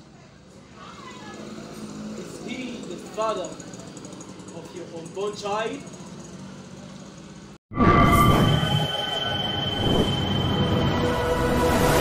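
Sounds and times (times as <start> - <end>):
high metallic ringing tones: 7.8 - 12.0.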